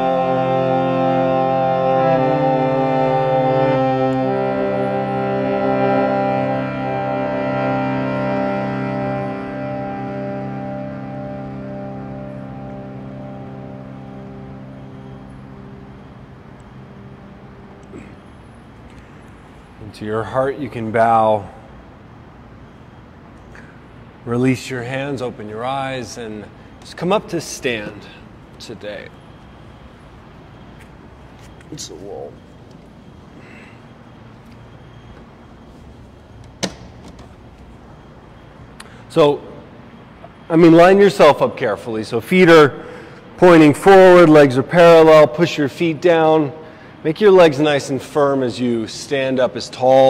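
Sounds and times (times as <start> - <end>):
harmonium sustained chord: 0.0 - 36.4, 37.4 - 50.0.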